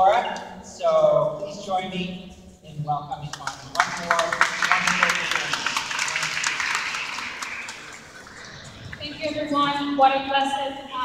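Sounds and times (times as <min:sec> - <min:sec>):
audience applauding: 0:03.4 - 0:09.2.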